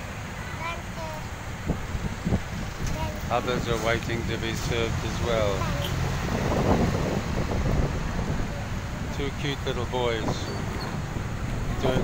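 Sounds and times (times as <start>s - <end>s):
low street noise: 0.0s - 12.0s
wind buffeting microphone: 0.6s - 12.0s.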